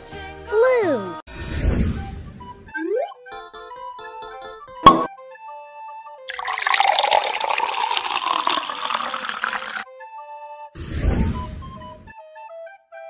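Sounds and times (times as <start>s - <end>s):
liquid pouring into glass bowl: 6.3s - 9.8s.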